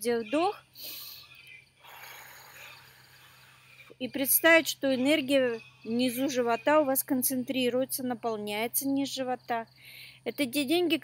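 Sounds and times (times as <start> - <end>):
crickets chirring: 0.0 - 11.0
woman breathing out slowly: 0.8 - 3.9.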